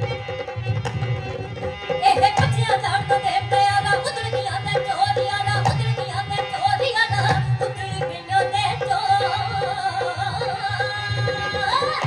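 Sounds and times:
woman singing folk song: 2.0 - 12.0.

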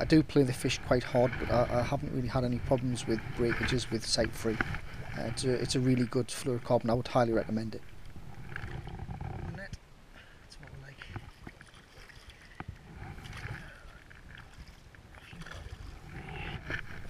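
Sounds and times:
wind rumble on microphone: 0.0 - 9.8
water splashing around a net: 11.3 - 16.2.

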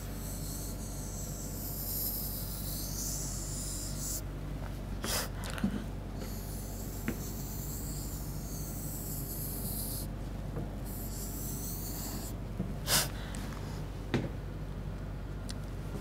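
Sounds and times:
stylus rubbing on whiteboard screen: 0.0 - 4.2, 6.2 - 10.1, 10.9 - 12.3
low electrical hum: 0.0 - 16.0
short sharp breath: 12.9 - 13.8.

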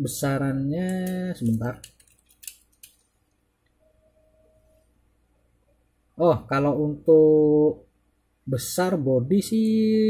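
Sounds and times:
toy cars clicking and scraping: 0.9 - 3.0.

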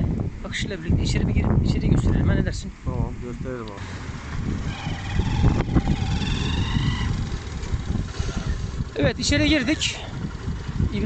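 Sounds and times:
wind rumbling on microphone: 0.0 - 11.0
small motorbike engine: 3.8 - 11.0.

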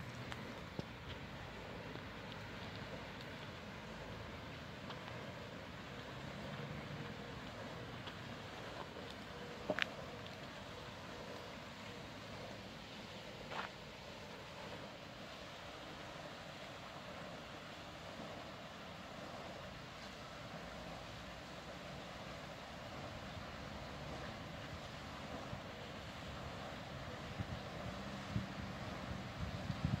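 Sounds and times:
outdoor background hiss: 0.0 - 30.0.

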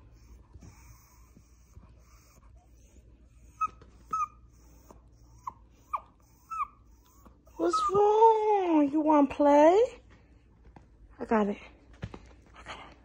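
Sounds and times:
dog whining: 0.2 - 8.2.

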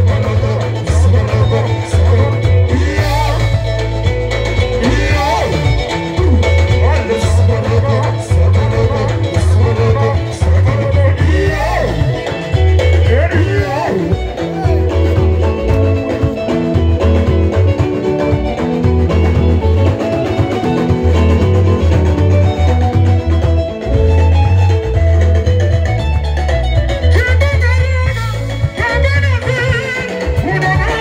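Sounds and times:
person singing: 0.0 - 4.0, 4.7 - 16.4, 27.1 - 31.0
live band dance music: 0.0 - 31.0.

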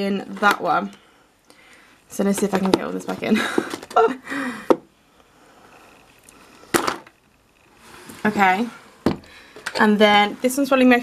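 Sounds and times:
makeup products being handled: 0.0 - 1.0, 2.1 - 4.1, 8.0 - 10.8.

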